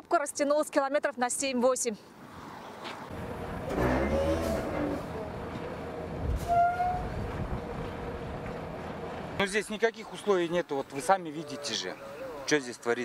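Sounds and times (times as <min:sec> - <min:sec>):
truck engines rumbling: 0:02.6 - 0:13.0
truck horn: 0:03.6 - 0:05.2, 0:06.4 - 0:07.2.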